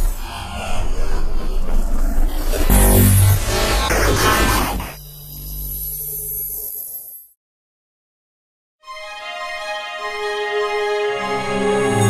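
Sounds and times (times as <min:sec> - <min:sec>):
harsh static burst: 0:02.3 - 0:05.8.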